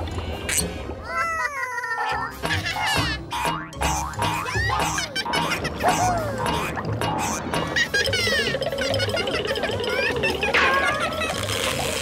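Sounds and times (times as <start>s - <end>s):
background music with low beat: 2.4s - 9.6s.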